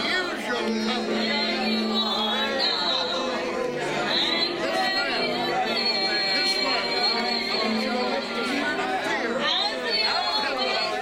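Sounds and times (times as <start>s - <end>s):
people praying aloud: 0.0s - 11.0s.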